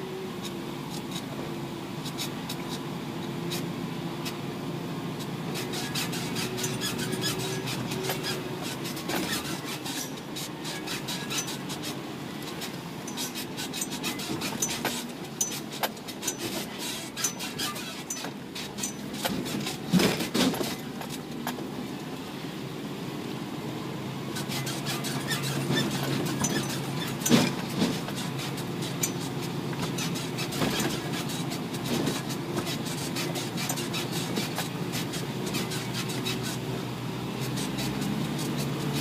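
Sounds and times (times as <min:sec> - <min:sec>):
truck engine running: 0:00.0 - 0:39.0
rattling and clattering: 0:05.6 - 0:21.7, 0:24.4 - 0:36.8.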